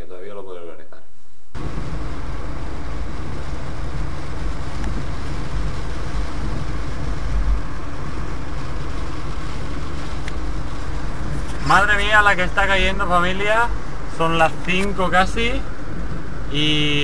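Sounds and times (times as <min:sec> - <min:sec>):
heavy rain: 0:01.6 - 0:17.0.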